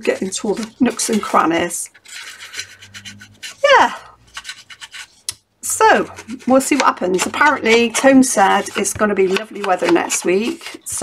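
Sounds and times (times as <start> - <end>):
foam tool scratching paper: 0.0 - 5.3, 5.9 - 11.0.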